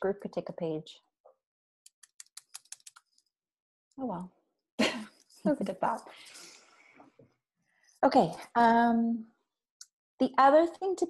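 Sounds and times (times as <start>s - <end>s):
keyboard typing: 1.9s - 3.2s.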